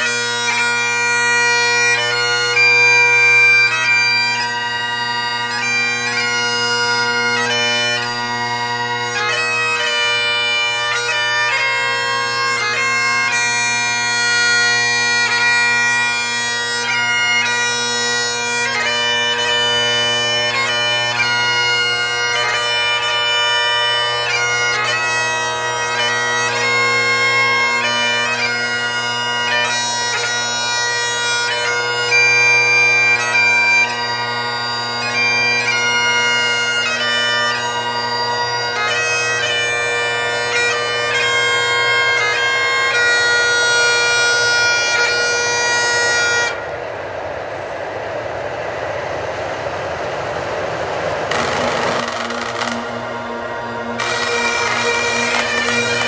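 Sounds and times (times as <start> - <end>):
bagpipe music with drone: 0.0 - 48.4, 50.0 - 56.0
freight train passing: 0.0 - 56.0.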